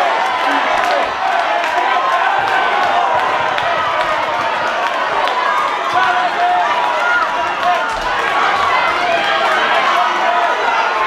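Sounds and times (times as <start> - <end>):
crowd shouting: 0.0 - 11.0
din of many voices: 0.0 - 11.0.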